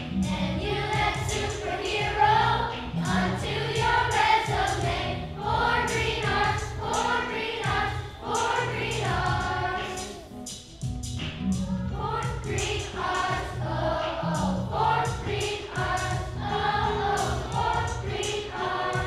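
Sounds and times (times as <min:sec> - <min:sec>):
children's choir singing: 0:00.0 - 0:10.6, 0:11.6 - 0:19.0
instrumental accompaniment: 0:00.0 - 0:19.0.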